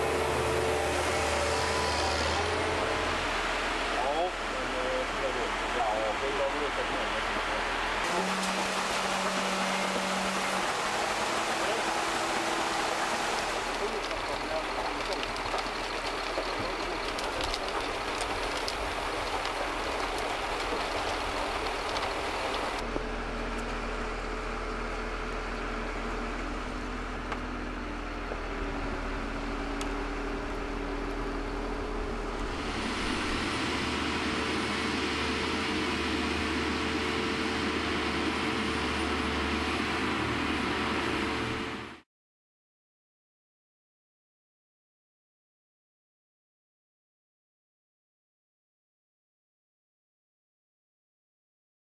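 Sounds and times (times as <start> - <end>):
tracked vehicle engine running: 0.0 - 42.0.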